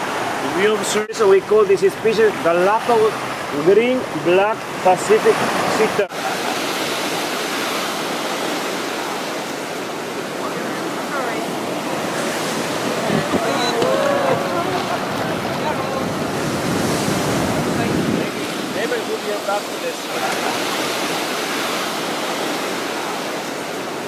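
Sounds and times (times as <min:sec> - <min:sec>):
surf breaking over rocks: 0:02.3 - 0:24.0
wind on microphone: 0:06.7 - 0:18.9.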